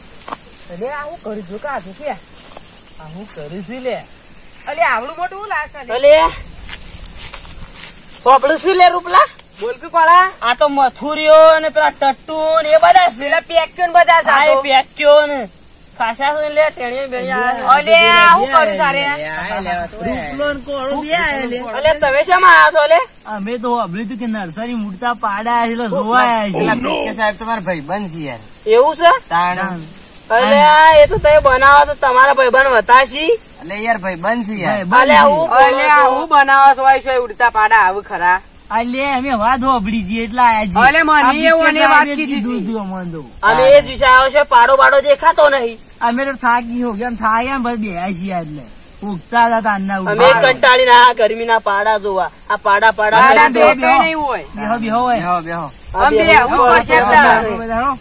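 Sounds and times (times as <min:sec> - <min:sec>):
steady high hiss: 0:00.0 - 0:58.0
man's voice: 0:08.2 - 0:58.0
person talking: 0:16.0 - 0:58.0.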